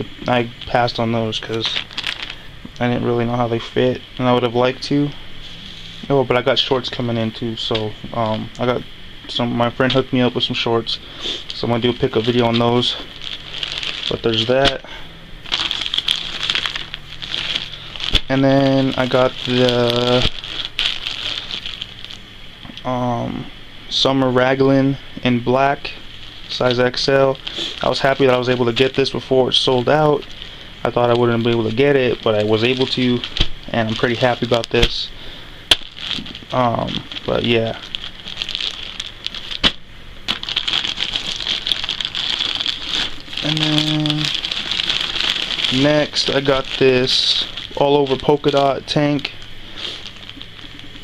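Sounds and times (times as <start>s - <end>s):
plastic bag crinkling: 0.3s - 5.0s, 9.7s - 22.3s, 25.5s - 51.0s.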